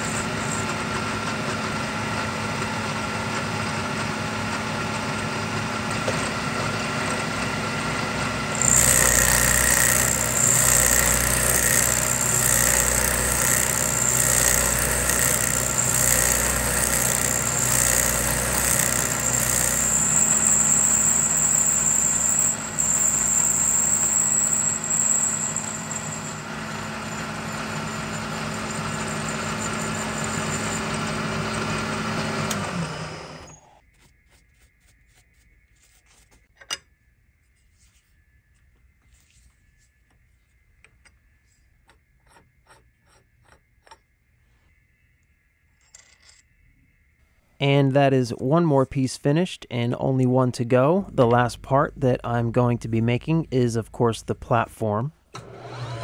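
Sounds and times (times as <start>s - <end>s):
end mill cutting steel whine: 5.1s - 33.8s
milling machine spindle running: 8.5s - 33.6s.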